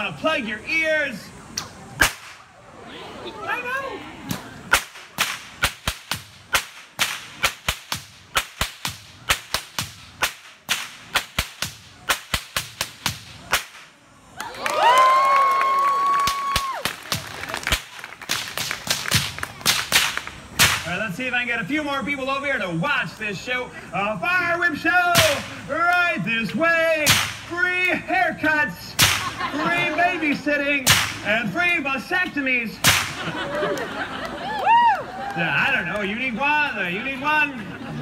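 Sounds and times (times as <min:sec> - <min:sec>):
whip cracking: 0:01.6 - 0:02.5, 0:04.3 - 0:14.0, 0:16.6 - 0:21.0, 0:25.1 - 0:25.6, 0:27.0 - 0:28.0, 0:29.0 - 0:29.4, 0:30.8 - 0:31.8, 0:32.8 - 0:33.3.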